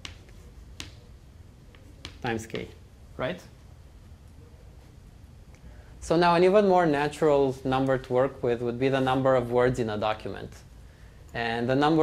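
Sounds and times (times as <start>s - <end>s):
chalk tapping on blackboard: 0.0s - 2.8s
faint room hum: 0.0s - 12.0s.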